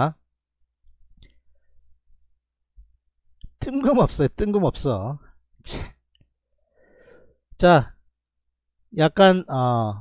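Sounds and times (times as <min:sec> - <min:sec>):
man speaking: 0:03.6 - 0:05.3, 0:07.6 - 0:08.0, 0:08.9 - 0:10.0.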